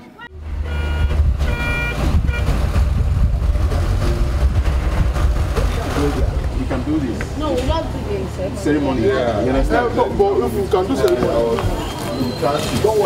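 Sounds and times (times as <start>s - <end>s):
minibus engine running: 0.2s - 11.7s.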